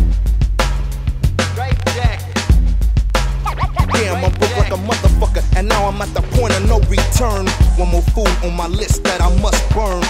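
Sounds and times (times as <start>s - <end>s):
hip-hop bass line and drum beat: 0.0s - 10.0s
turntable scratches: 3.4s - 6.0s.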